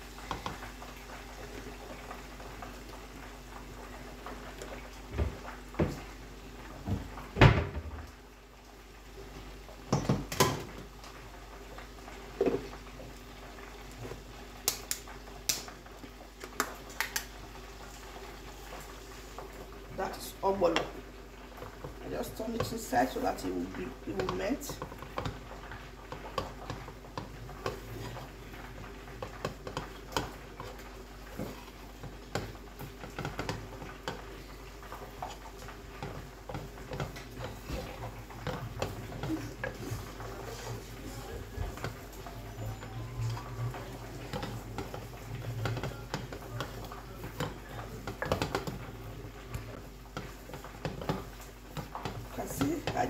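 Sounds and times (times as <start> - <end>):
wooden spatula scraping saucepan: 26.1 - 28.5, 29.2 - 53.0.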